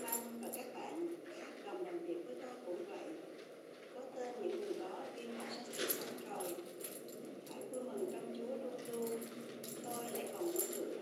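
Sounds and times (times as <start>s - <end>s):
woman reading aloud softly: 0.0s - 3.3s, 3.9s - 6.7s, 7.5s - 11.0s.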